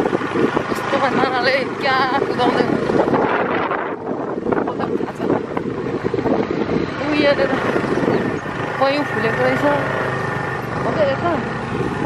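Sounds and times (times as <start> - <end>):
motorcycle engine: 0.0 - 12.0
wind on microphone: 0.0 - 12.0.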